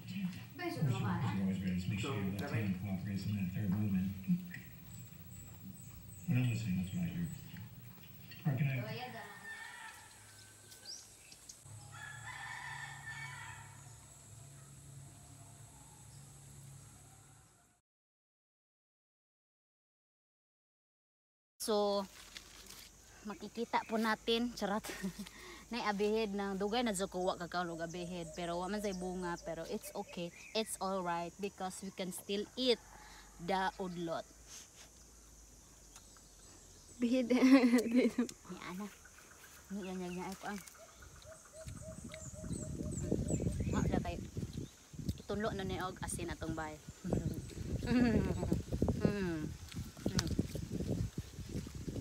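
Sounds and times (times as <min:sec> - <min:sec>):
rooster crowing: 0:08.9 - 0:11.1, 0:11.7 - 0:17.8, 0:32.5 - 0:33.6.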